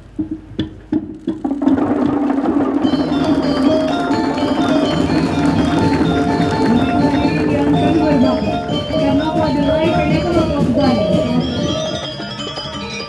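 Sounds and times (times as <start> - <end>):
percussion music with metallic tones: 0.0 - 13.0
hollow wooden knocks: 0.1 - 11.8.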